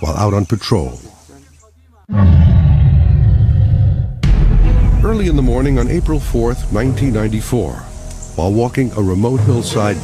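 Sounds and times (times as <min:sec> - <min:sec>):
deep rumbling sound effect: 0:02.2 - 0:10.0.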